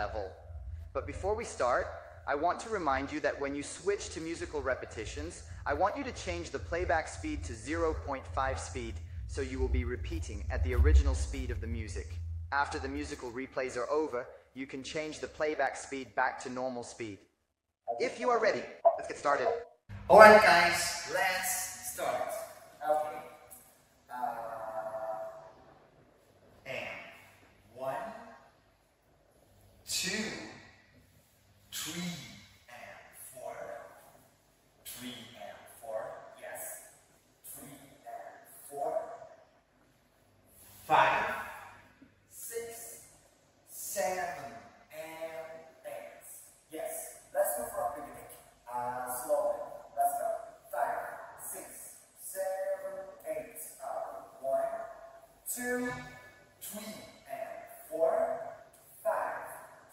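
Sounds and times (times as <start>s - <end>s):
man making wordless syllables: 0.0s - 17.2s, 17.9s - 23.3s, 24.1s - 25.6s, 34.8s - 36.8s, 37.4s - 39.2s, 43.7s - 59.7s
man's voice in short bursts: 18.0s - 23.3s.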